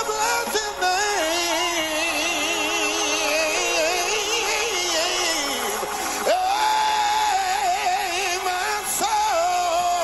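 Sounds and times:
person singing gospel music: 0.0s - 10.0s.

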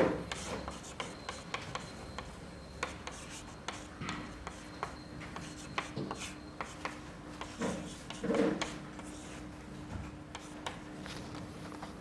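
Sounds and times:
chalk tapping and scratching: 0.2s - 9.5s, 10.3s - 10.8s.

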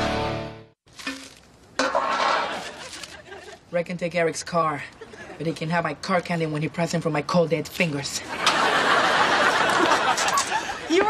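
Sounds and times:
plastic bag of candy rustling: 0.9s - 1.7s, 2.5s - 3.6s.

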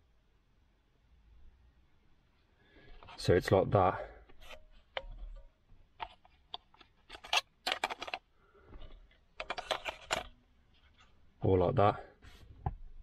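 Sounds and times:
hard plastic clicks and scrapes: 4.2s - 11.1s.

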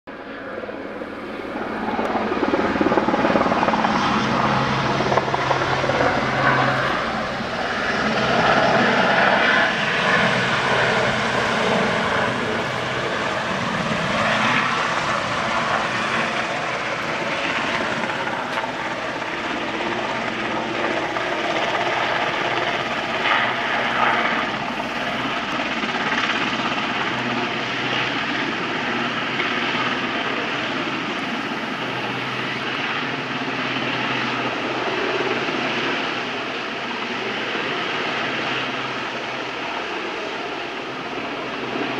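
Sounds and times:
helicopter rotors and engines: 0.1s - 41.9s.

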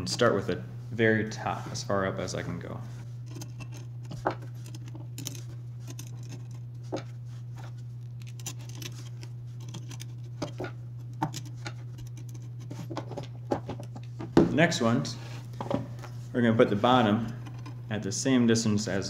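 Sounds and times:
steady low hum: 0.0s - 19.0s
screwdriver clicks and metal scrapes: 3.2s - 14.1s, 17.2s - 17.9s.

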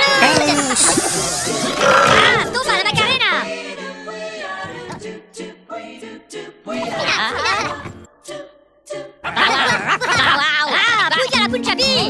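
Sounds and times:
high-pitched cartoon voices babbling: 0.0s - 2.8s
music: 0.0s - 12.0s.

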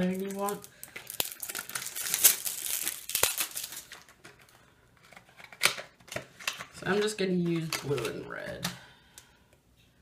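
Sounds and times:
packaging crinkling and tearing: 0.0s - 6.8s.

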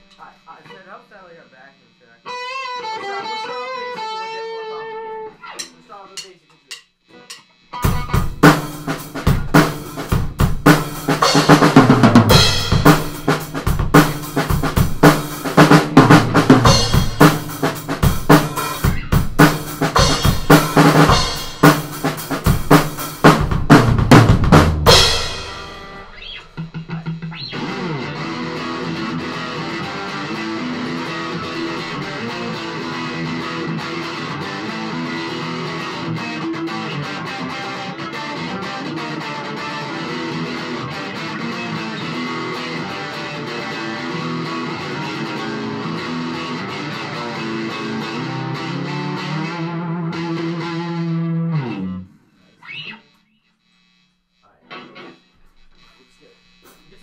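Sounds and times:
electric guitar solo: 2.2s - 5.7s, 7.1s - 10.0s, 15.5s - 21.6s, 24.9s - 53.1s, 54.6s - 55.3s
drum kit hits: 7.8s - 34.7s.

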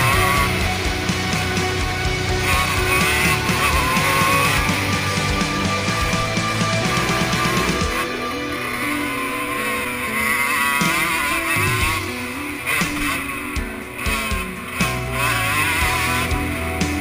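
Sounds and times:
dirt bike engine revving: 0.0s - 17.0s
music: 0.0s - 17.0s.

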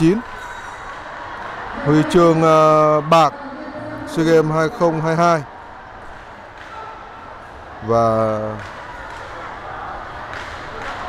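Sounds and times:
venue background noise: 0.0s - 11.0s
man speaking: 1.8s - 3.3s, 3.9s - 5.5s, 7.8s - 8.6s.

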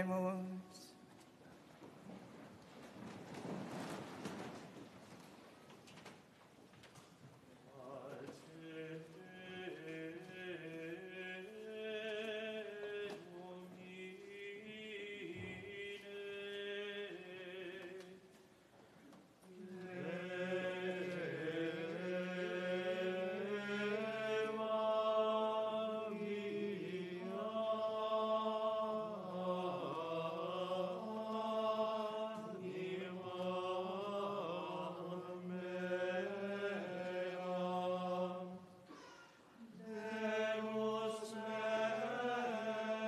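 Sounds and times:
choir chanting: 7.8s - 18.1s, 19.5s - 39.0s, 39.6s - 43.0s.

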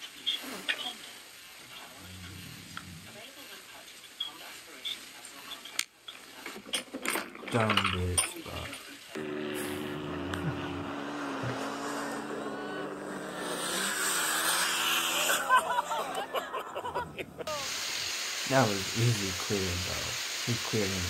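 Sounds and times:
off-road vehicle engine revving: 9.2s - 17.6s.

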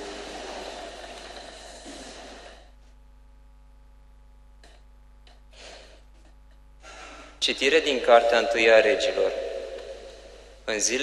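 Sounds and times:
breath into microphone: 0.0s - 2.9s, 5.5s - 6.1s, 6.8s - 7.4s, 9.6s - 10.7s
man reading aloud: 7.4s - 9.6s, 10.7s - 11.0s.

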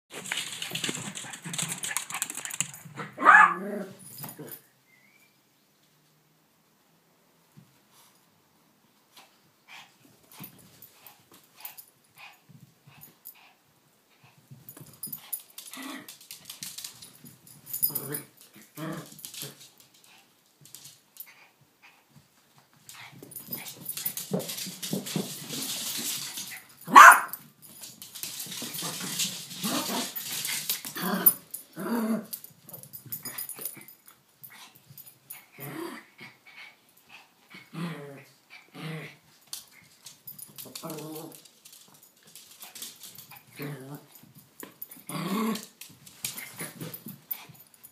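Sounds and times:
rustling scuffle: 0.1s - 3.4s, 22.8s - 31.6s
dog barking: 3.0s - 3.6s, 26.9s - 27.3s
dogs growling and grunting: 30.9s - 32.4s, 35.5s - 36.5s, 37.5s - 39.2s, 43.5s - 44.2s, 45.0s - 45.8s.

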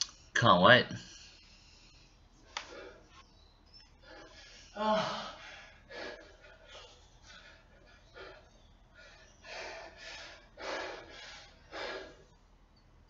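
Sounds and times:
man gasping breaths: 4.0s - 12.4s.

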